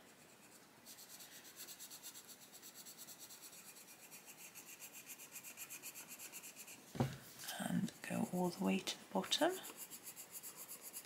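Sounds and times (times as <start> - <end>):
pencil shading on paper: 0.0 - 6.8, 9.5 - 11.0.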